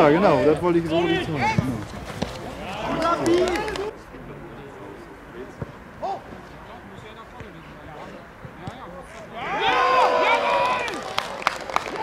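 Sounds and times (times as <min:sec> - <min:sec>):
man shouting: 0:09.4 - 0:10.9.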